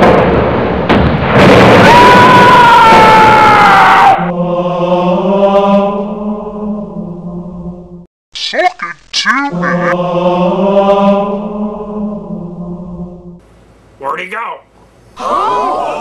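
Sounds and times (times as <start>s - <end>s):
loud explosion blasts: 0.0s - 3.7s
sustained choir-like chord: 4.3s - 8.0s, 9.7s - 13.4s.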